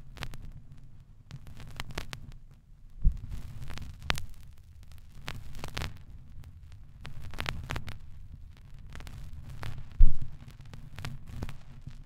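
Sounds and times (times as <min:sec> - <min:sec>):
heavy low thump: 0:10.0 - 0:10.3
low rumble: 0:10.0 - 0:10.3.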